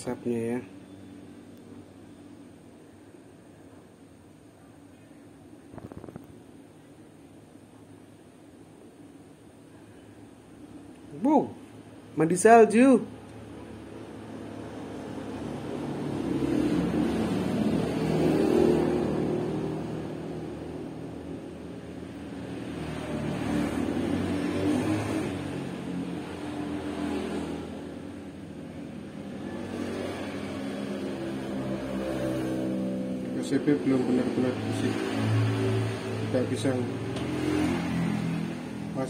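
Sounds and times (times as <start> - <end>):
vehicle engines passing: 13.1 - 39.0.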